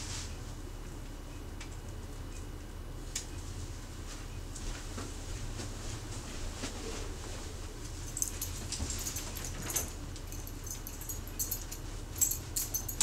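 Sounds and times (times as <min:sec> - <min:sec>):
dog collar tags jingling: 0:08.1 - 0:13.0.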